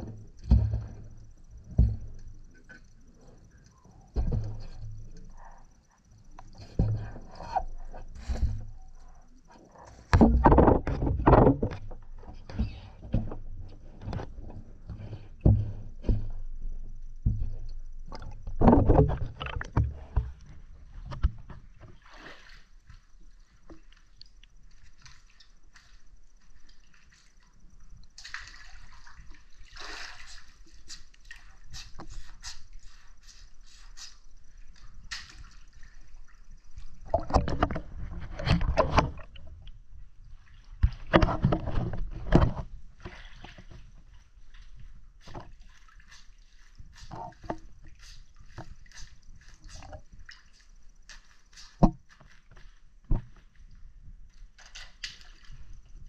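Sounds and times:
underwater knocks and thumps: 0.0 - 3.0, 4.1 - 5.4, 6.3 - 9.0, 10.0 - 22.0, 36.8 - 40.0, 40.7 - 46.0, 46.8 - 50.2, 51.8 - 53.6
muffled underwater water sloshing: 0.0 - 33.3, 34.2 - 56.0
bubbly crackling and clicks: 19.1 - 19.9.

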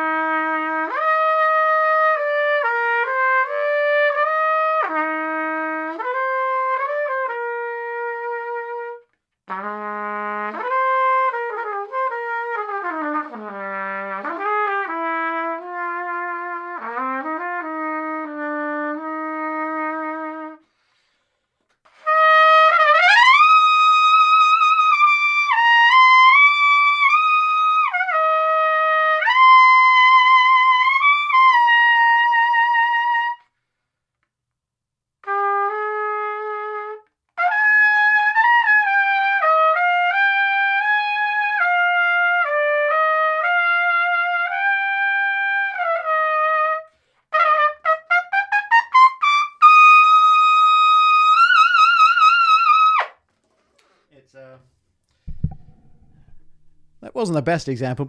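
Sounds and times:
trumpet playing: 0.0 - 20.7, 21.9 - 33.4, 35.2 - 53.2.

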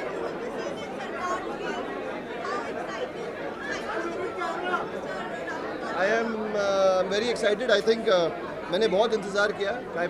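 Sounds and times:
many people talking: 0.0 - 10.0.

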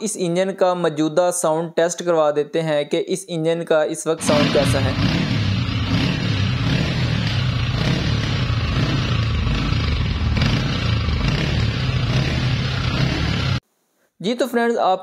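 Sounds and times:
motorcycle engine running: 4.2 - 13.6.

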